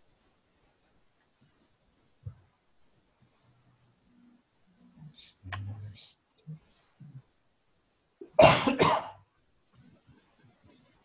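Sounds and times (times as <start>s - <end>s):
faint low voice: 3.5s - 7.3s
person coughing: 8.2s - 9.2s.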